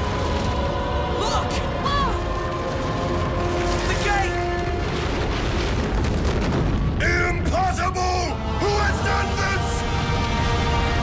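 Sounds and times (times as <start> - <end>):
explosion-like eruption rumble: 2.7 - 7.6.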